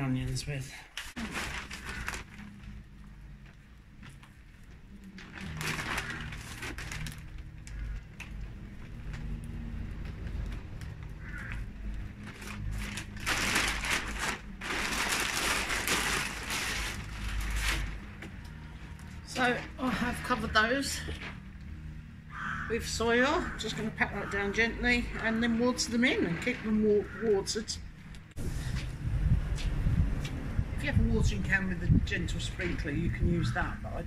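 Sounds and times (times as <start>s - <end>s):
plastic bag rustling: 1.0s - 21.6s.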